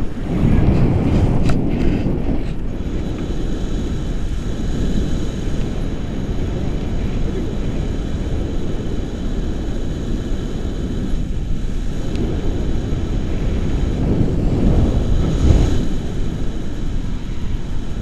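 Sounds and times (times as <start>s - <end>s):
wind rumbling on microphone: 0.0s - 18.0s.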